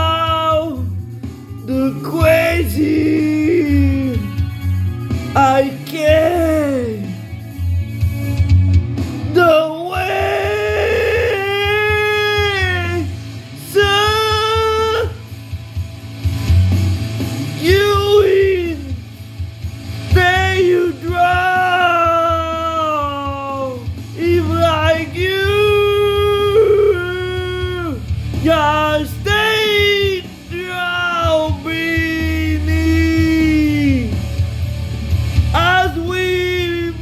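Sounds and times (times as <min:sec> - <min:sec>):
man singing a long high note: 0:01.7 - 0:04.3, 0:09.4 - 0:13.0.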